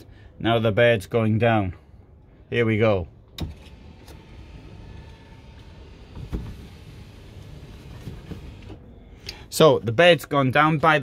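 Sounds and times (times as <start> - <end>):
electric motors droning: 3.5 - 8.8.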